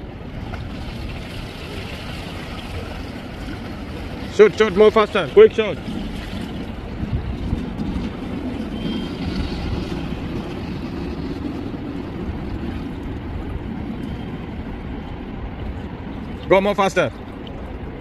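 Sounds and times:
water rushing while swimming: 0.0s - 18.0s
wind on microphone: 5.4s - 18.0s.

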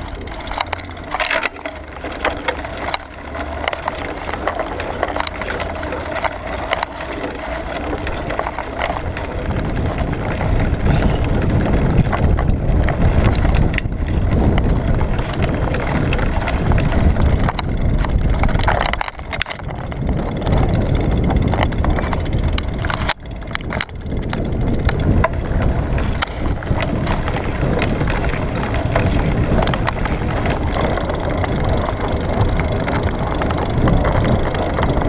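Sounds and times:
clicks and rattles from bumps: 0.0s - 35.0s
tyre and road rumble: 0.0s - 35.0s
wind buffeting microphone: 0.0s - 35.0s.

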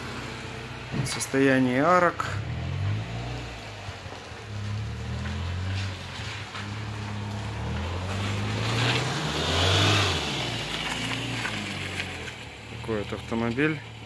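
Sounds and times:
vehicle engine running: 0.0s - 14.0s.

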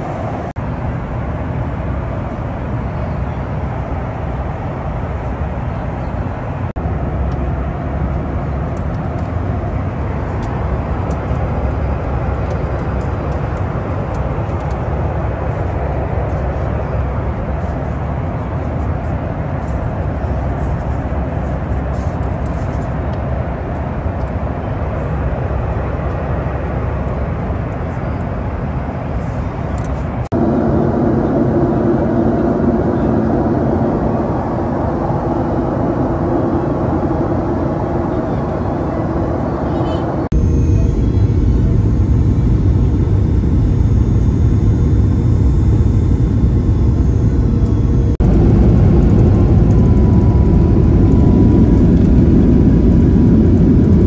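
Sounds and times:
airliner cabin rumble: 0.0s - 54.0s.

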